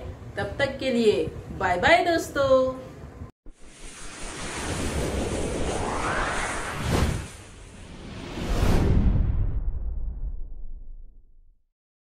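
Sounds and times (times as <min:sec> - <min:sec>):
whoosh sound effect: 0:03.5 - 0:10.4.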